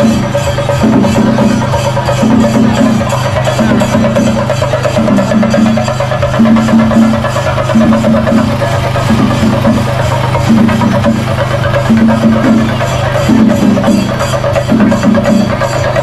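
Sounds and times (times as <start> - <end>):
fast dense drumming: 0.0 - 16.0.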